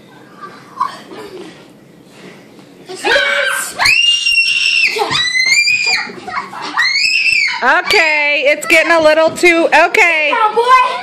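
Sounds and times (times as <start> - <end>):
child screaming high-pitched: 3.0 - 7.6
child shouting: 10.3 - 11.0.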